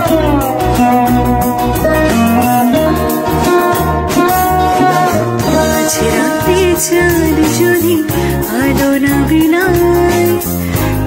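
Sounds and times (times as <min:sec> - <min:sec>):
small band playing instrumental: 0:00.0 - 0:11.0.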